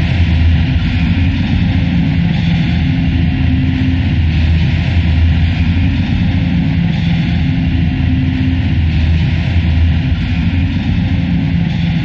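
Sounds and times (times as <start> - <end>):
low droning hum: 0.0 - 12.0.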